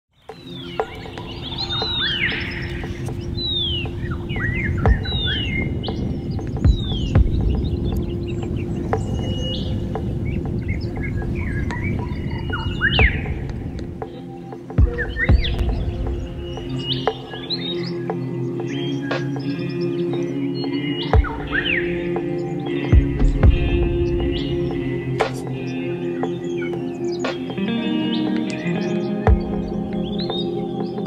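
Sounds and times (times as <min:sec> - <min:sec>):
background music low notes: 0:00.2 - 0:31.0
birds whistling and chirping: 0:00.2 - 0:31.0.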